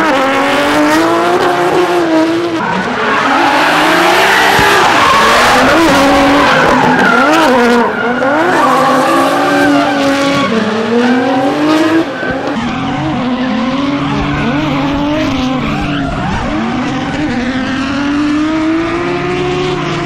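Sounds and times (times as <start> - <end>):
car engines revving hard: 0.0 - 20.0
tyre screech: 2.6 - 17.0.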